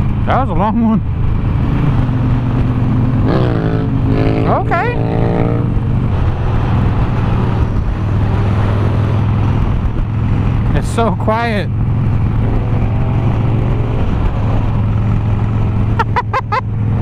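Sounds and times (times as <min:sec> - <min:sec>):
wind rushing over microphone: 0:00.0 - 0:16.0
motorcycle engine running: 0:00.0 - 0:17.0.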